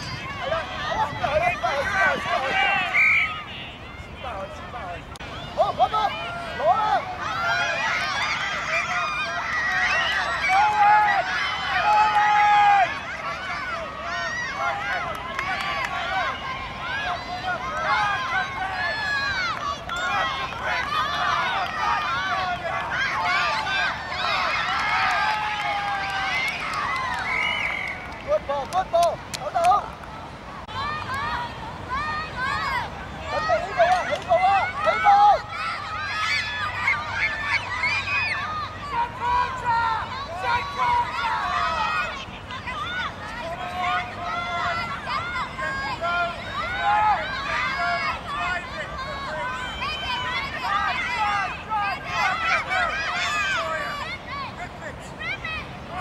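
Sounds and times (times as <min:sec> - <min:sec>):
girls shouting and squealing: 0:30.7 - 0:54.6.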